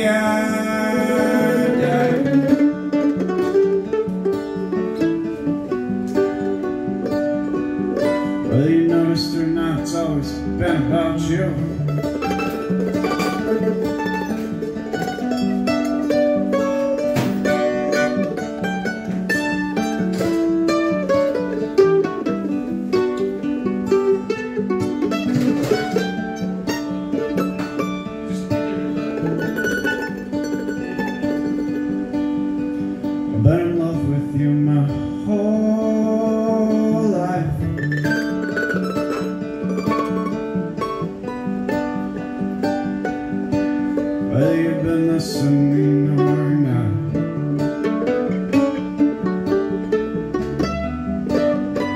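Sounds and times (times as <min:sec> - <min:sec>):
acoustic guitar strumming: 0:00.0 - 0:51.9
mandolin picking quick notes: 0:00.0 - 0:51.9.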